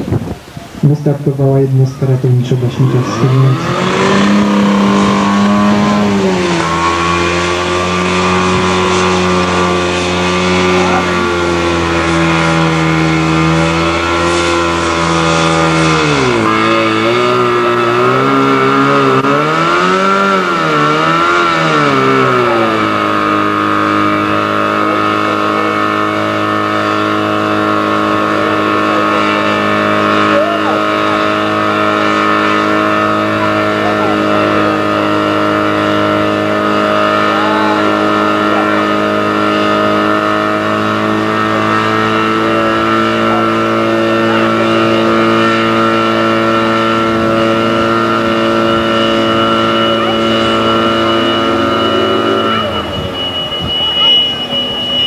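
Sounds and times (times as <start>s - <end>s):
pump engine running hard: 0.0s - 55.0s.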